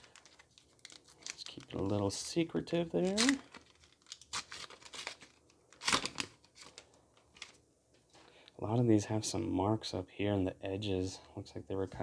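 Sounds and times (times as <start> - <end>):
wrapper tearing and crinkling: 0.0 - 2.2, 2.9 - 7.6.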